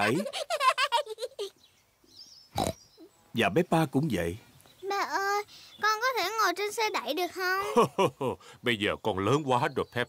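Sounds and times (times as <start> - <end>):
cartoon pig snort: 2.6 - 2.8.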